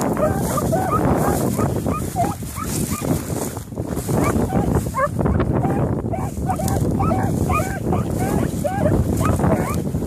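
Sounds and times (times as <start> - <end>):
hounds baying: 0.0 - 3.2, 4.1 - 10.0
wind on microphone: 0.0 - 10.0.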